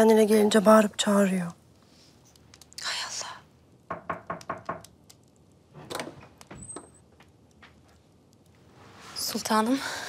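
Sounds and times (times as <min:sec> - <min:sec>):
knocking on wooden door: 0:03.9 - 0:04.9.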